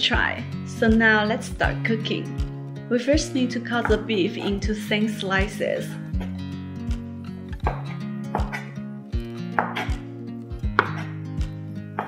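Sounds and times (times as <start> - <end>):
soft background music: 0.0 - 12.0
knife slicing meat on board: 7.6 - 12.0.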